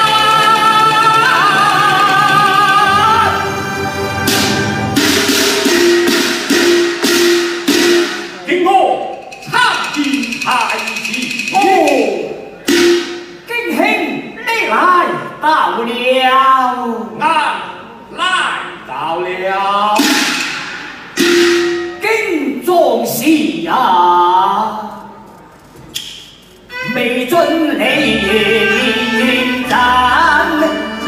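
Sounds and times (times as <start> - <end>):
sharp percussion strikes: 4.1 - 13.5, 20.0 - 22.2.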